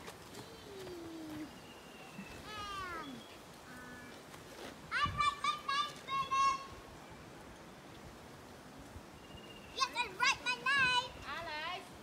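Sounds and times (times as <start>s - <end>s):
children shouting and squealing: 2.4s - 3.2s, 4.9s - 6.8s.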